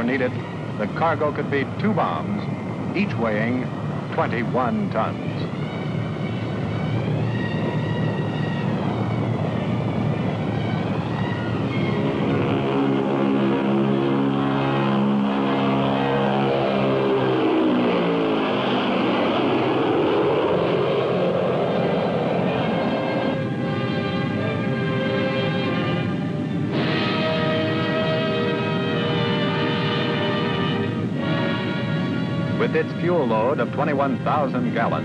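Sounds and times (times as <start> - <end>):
aircraft engines droning: 0.0 - 35.0
orchestral music: 0.0 - 35.0.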